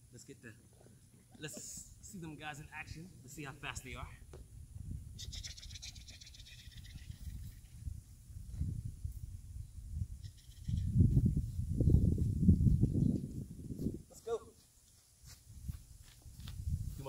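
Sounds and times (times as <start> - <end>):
wind buffeting microphone: 3.8 - 14.2, 15.5 - 17.0.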